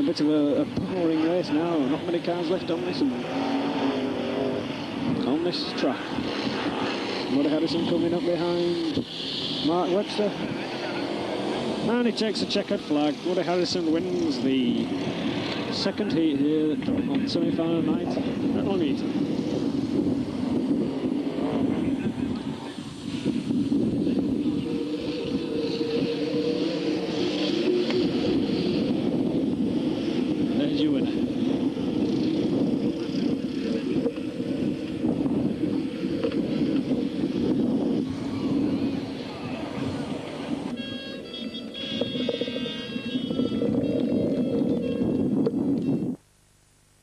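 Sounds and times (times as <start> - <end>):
race car engines: 0.0 - 46.2
voices: 32.9 - 45.0.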